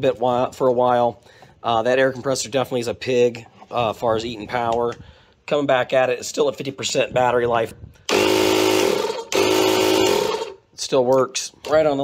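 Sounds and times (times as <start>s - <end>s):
air compressor buzzing: 8.0s - 10.6s.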